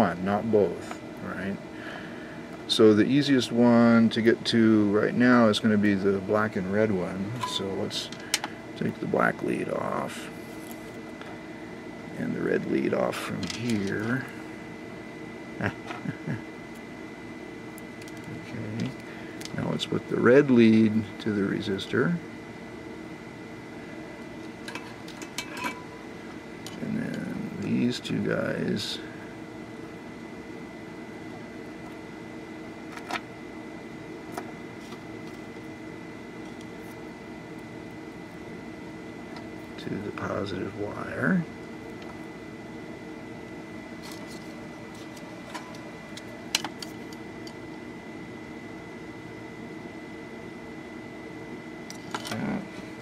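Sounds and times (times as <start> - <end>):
faint high whine: 0.0 - 53.0
room hum: 0.0 - 53.0.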